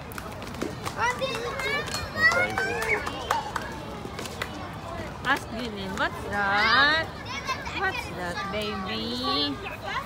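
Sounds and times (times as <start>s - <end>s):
children talking and calling out: 0.7s - 10.0s.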